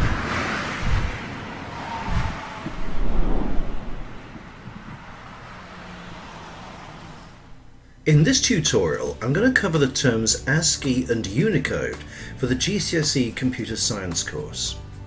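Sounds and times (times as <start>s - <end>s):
deep thumps: 0.0s - 1.3s, 2.1s - 5.2s
rushing whoosh: 0.0s - 7.7s.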